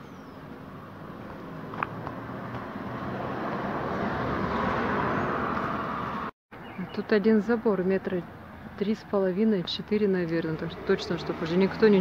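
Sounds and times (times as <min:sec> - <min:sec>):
car passing: 0:00.5 - 0:06.3, 0:10.1 - 0:12.0.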